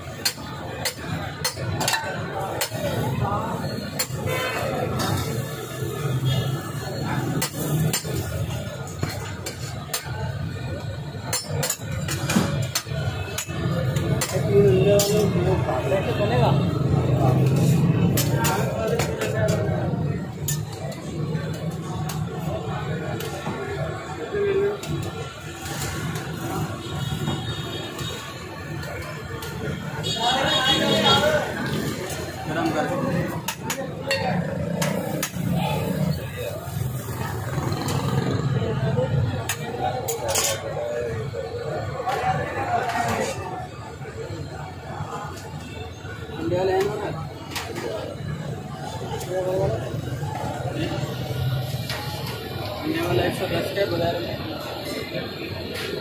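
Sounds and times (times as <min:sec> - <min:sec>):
men chattering: 0:00.0 - 0:56.0.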